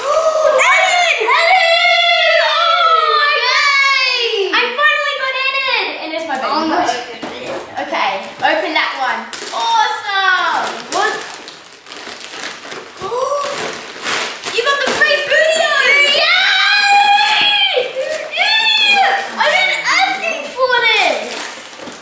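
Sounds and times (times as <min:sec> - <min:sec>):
children's excited voices: 0:00.0 - 0:06.7, 0:14.5 - 0:21.5
wrapping paper rustling and tearing: 0:06.8 - 0:22.0.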